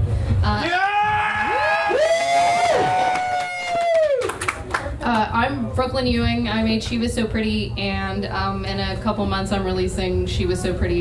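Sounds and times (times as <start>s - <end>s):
people whooping: 0.6s - 4.7s.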